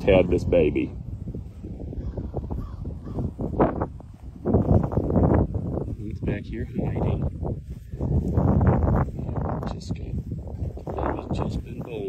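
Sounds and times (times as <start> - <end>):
footsteps in dry grass: 0.1 - 12.0
crows cawing: 1.9 - 3.4.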